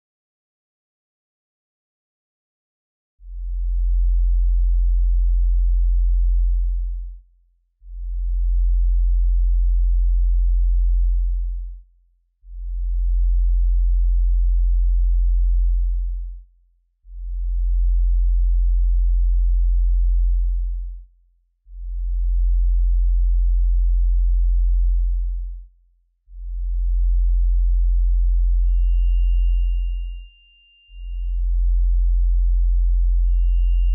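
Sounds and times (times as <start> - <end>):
low sine-wave bass tone: 3.2 - 33.9.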